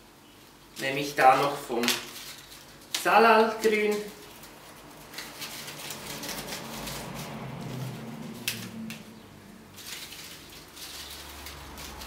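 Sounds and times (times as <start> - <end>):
leaves and stems rustling: 0.2 - 12.0.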